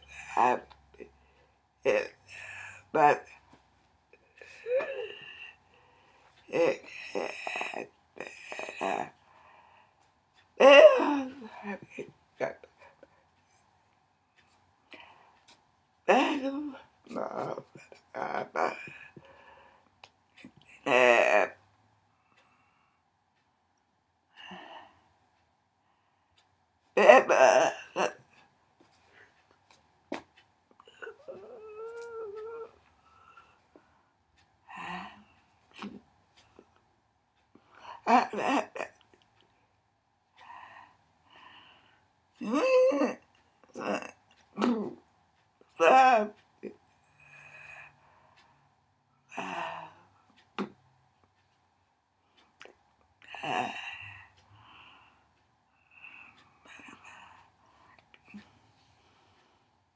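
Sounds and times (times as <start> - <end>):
held whimper: 4.4 - 5.6, 30.8 - 32.9.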